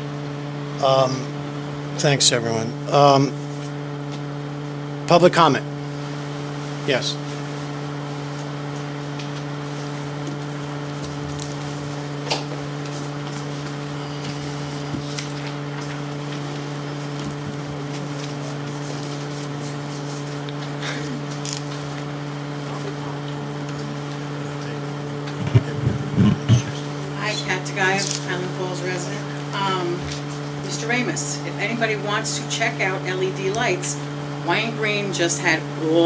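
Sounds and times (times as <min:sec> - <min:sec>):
low electrical hum: 0:00.0 - 0:36.0
low voices: 0:00.8 - 0:01.4, 0:02.0 - 0:03.4, 0:06.9 - 0:07.2, 0:10.1 - 0:36.0.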